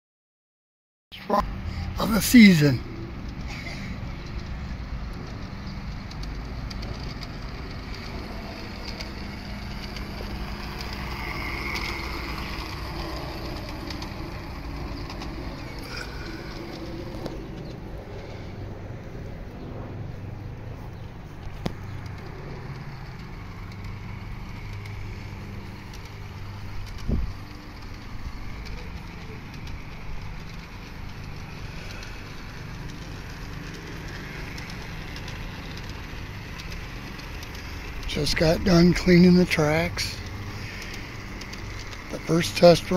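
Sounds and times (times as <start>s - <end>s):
low outdoor rumble: 1.2s - 42.9s.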